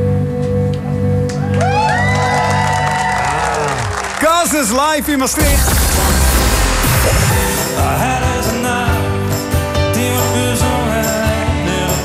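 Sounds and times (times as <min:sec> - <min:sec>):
bass guitar and keyboard chord: 0:00.0 - 0:02.1, 0:05.4 - 0:12.0.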